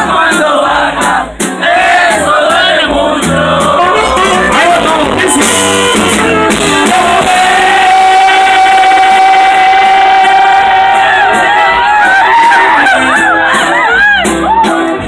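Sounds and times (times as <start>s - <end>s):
live band music with saxophone: 0.0s - 15.0s.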